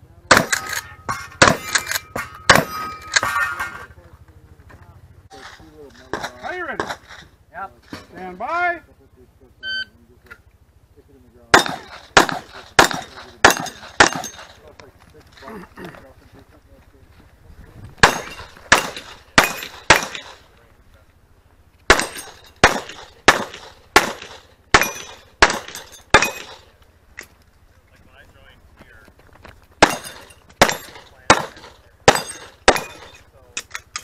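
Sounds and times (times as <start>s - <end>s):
carbine gunshots: 0.3s - 3.5s, 11.5s - 14.7s, 18.0s - 20.6s, 21.9s - 26.8s, 29.8s - 34.0s.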